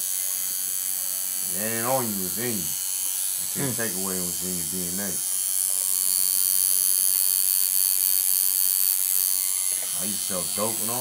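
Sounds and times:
tattoo machine buzzing: 0:00.0 - 0:11.0.

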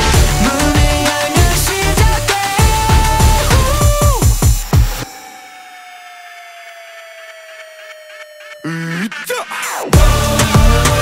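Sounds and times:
held electronic tone sliding down: 0:03.1 - 0:08.8.

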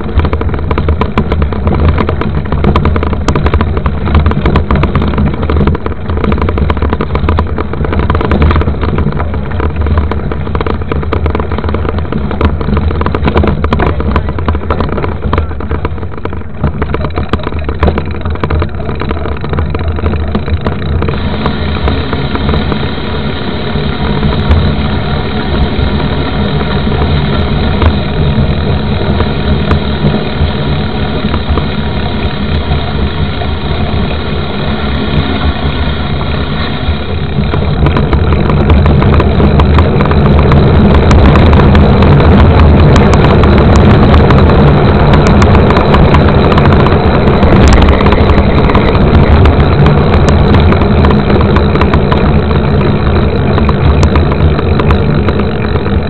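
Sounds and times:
rushing wind: 0:00.0 - 0:56.0.

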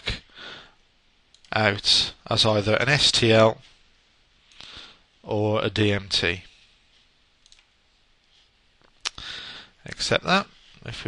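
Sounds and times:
faint computer mouse click: 0:07.4 - 0:07.7.

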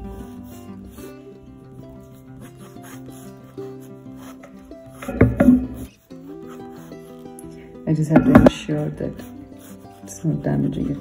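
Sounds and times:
fountain pen scratching paper: 0:00.0 - 0:00.7, 0:02.0 - 0:06.8, 0:09.6 - 0:11.0
soft background music: 0:00.0 - 0:11.0.

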